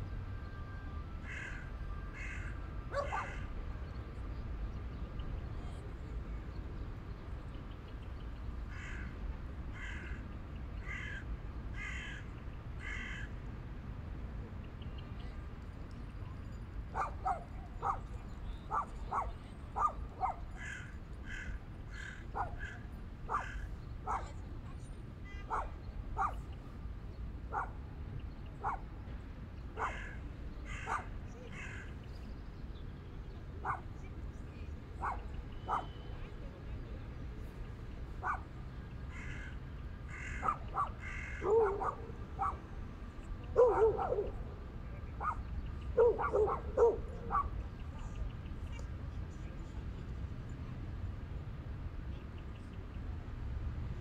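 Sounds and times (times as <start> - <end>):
dogs barking: 2.9 - 3.4, 16.9 - 20.6, 22.3 - 24.4, 25.5 - 26.4, 27.5 - 27.8, 28.6 - 28.9, 29.8 - 31.2, 33.6 - 33.9, 35.0 - 35.9, 38.2 - 38.5, 40.3 - 42.6, 43.5 - 44.4, 45.2 - 47.6
birds calling: 16.9 - 24.4, 29.6 - 32.3, 39.1 - 42.6.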